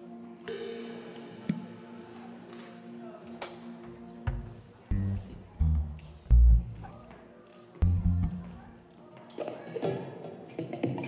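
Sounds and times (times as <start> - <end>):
band holding chords: 4.9 - 6.9, 7.8 - 8.7
loud low drum thumps: 7.8 - 8.5.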